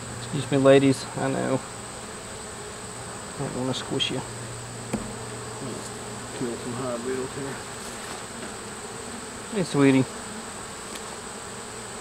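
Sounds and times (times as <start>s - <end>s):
honey bees buzzing: 0.0s - 12.0s.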